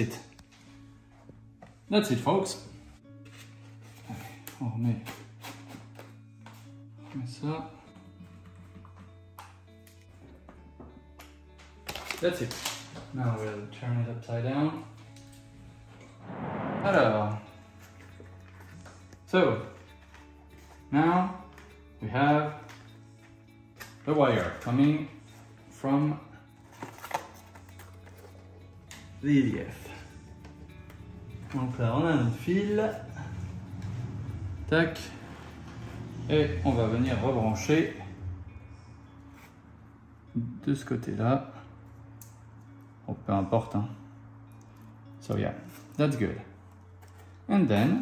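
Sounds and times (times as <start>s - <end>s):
quiet background music: 0.0s - 48.0s.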